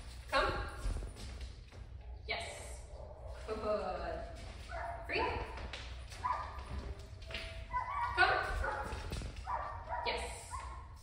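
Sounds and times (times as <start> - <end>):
dog yipping: 6.2 - 6.7, 7.6 - 11.0.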